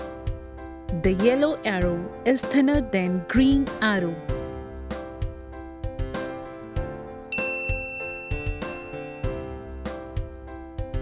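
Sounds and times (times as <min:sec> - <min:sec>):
background music: 0:00.0 - 0:11.0
bright chime ding: 0:07.3 - 0:09.3.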